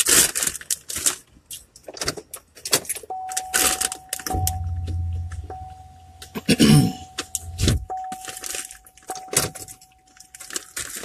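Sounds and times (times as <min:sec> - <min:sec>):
snack bag crinkling: 0:00.0 - 0:04.3, 0:08.0 - 0:11.0
keys jingling: 0:02.9 - 0:10.8
high electronic chime tone: 0:03.1 - 0:10.0
low rumble: 0:04.3 - 0:07.9.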